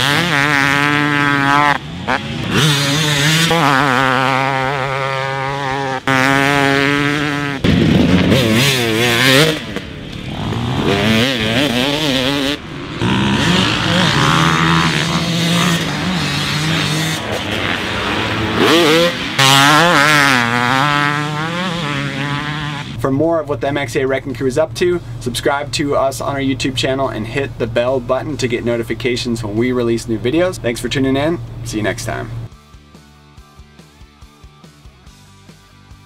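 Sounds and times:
motocross bike engine revving: 0.0 - 32.6.

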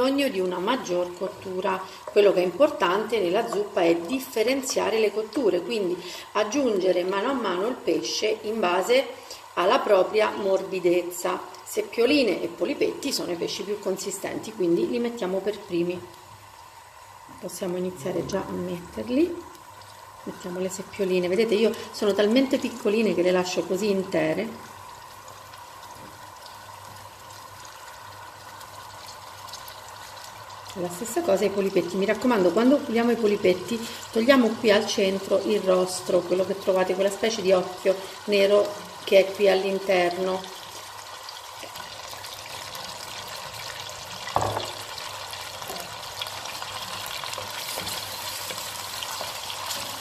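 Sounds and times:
oil sizzling in a pan: 0.0 - 50.0
wooden spoon stirring: 1.0 - 4.9, 46.8 - 50.0
single knock: 44.4 - 44.8.

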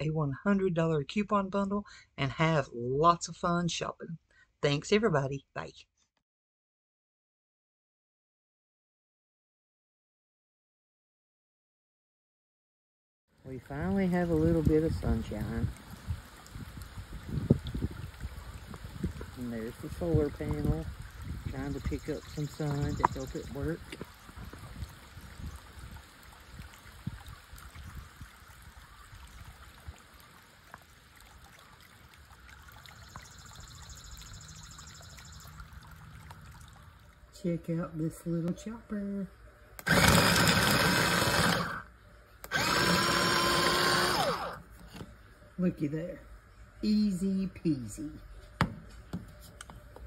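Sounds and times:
fountain splashing water: 13.4 - 37.4
wind on microphone: 14.2 - 30.0
food chopper blades chopping onion: 39.8 - 41.8, 42.5 - 44.5
motor whine: 39.8 - 44.7.

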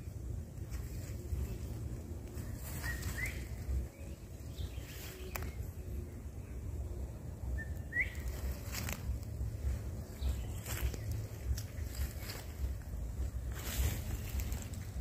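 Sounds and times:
wind rumble: 0.0 - 15.0.

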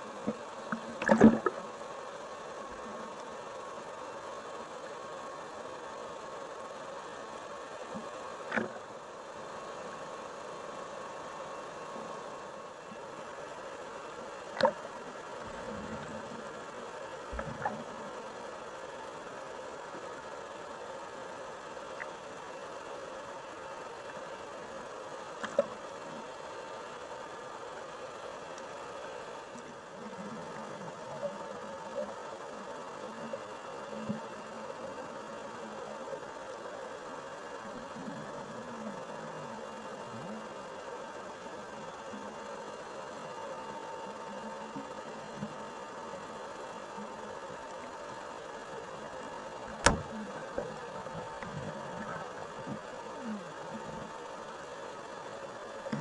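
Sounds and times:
underwater buzzing drone: 0.0 - 56.0
low gurgling: 0.2 - 1.8.

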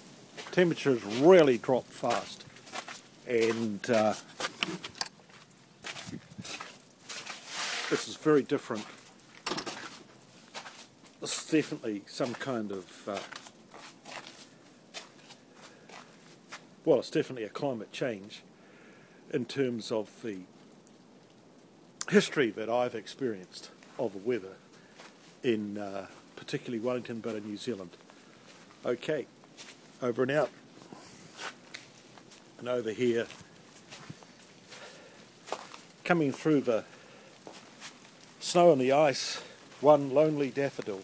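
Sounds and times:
footsteps on hail-covered ground: 0.0 - 16.8, 23.6 - 41.0
low hiss: 0.0 - 41.0.

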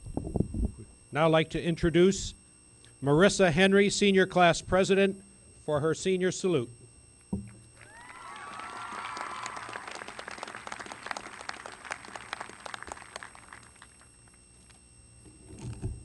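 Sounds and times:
single thump: 7.3 - 7.6
whoops and cheers: 7.8 - 11.8
audience applauding: 7.8 - 14.4.

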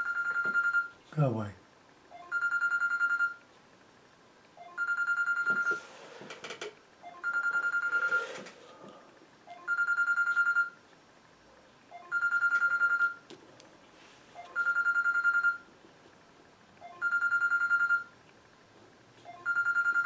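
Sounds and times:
electronic telephone ringing: 0.0 - 1.0, 2.1 - 3.4, 4.6 - 5.9, 7.0 - 8.5, 9.5 - 10.8, 11.9 - 13.2, 14.4 - 15.7, 16.8 - 18.1, 19.3 - 20.0.

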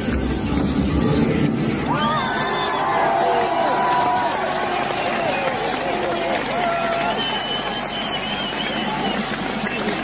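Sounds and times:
stadium crowd screaming and cheering: 0.0 - 10.0
shrill high whistle: 7.0 - 9.2.

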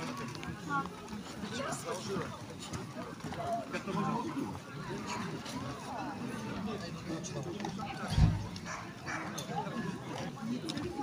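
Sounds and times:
dog barking: 8.6 - 9.3.

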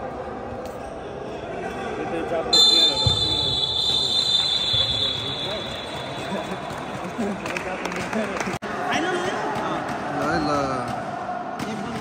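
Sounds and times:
crowd chatter: 0.0 - 12.0
referee's whistle blast: 2.6 - 6.4.

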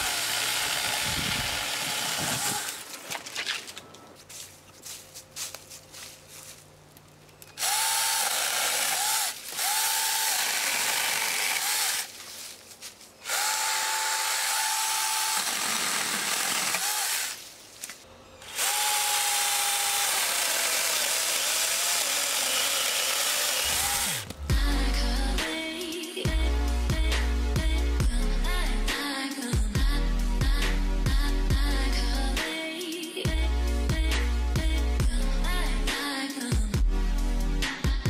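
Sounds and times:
electric chainsaw cutting branches: 0.0 - 3.5, 7.6 - 12.2, 13.2 - 17.5, 18.4 - 24.4
music: 24.3 - 38.0.

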